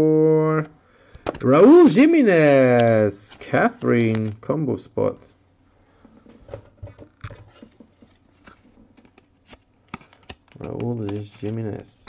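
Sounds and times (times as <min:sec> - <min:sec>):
card rustling: 0:01.5 - 0:04.5, 0:06.3 - 0:12.0
card clicks: 0:02.1 - 0:04.4, 0:08.4 - 0:11.6.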